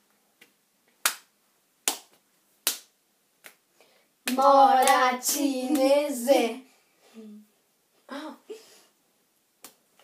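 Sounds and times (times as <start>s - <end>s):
hand slap: 0.4s - 3.6s, 4.2s - 5.9s.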